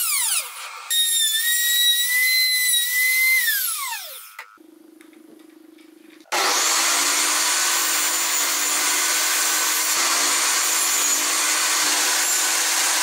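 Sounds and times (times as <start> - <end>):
table saw starting up: 6.3 - 7.9
router high whine: 6.3 - 9.2.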